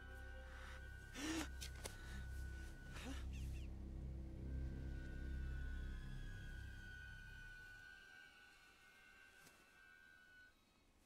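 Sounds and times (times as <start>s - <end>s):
reversed film soundtrack: 0.0s - 11.0s.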